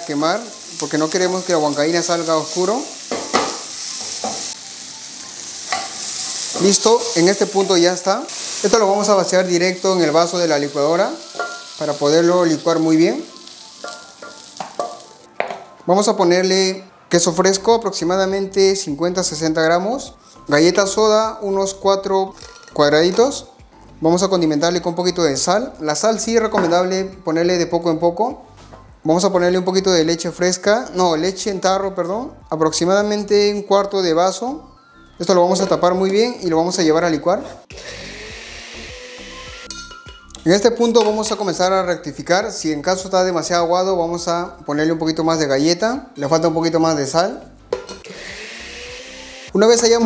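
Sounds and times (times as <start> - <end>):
hot oil sizzling: 0.0 - 15.3, 37.6 - 40.0
blender running: 37.7 - 39.7, 48.0 - 49.5.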